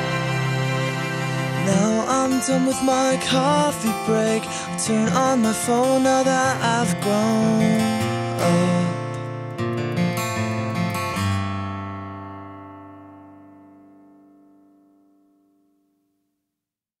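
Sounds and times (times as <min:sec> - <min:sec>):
strummed guitar chords: 0:00.0 - 0:16.2.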